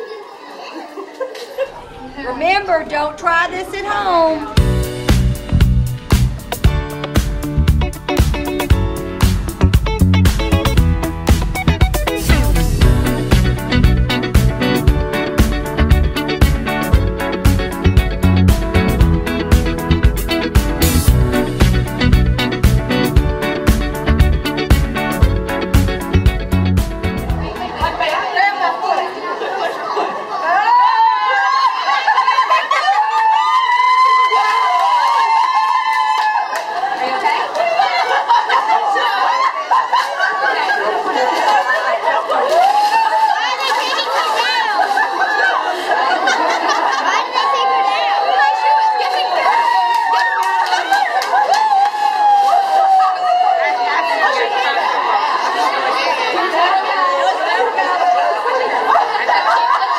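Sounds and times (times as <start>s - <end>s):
people chattering: 0.0s - 6.7s, 24.6s - 33.0s, 36.4s - 49.7s, 52.4s - 59.9s.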